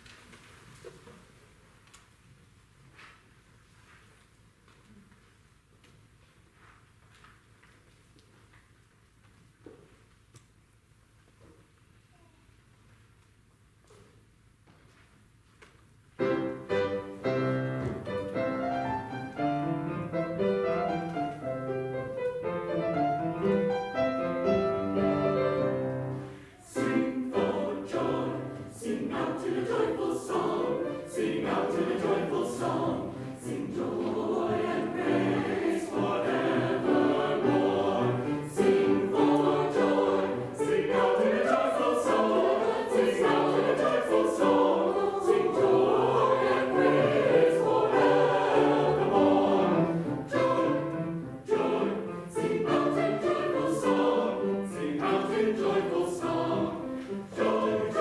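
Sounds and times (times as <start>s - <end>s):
mixed choir singing: 24.3s - 58.0s.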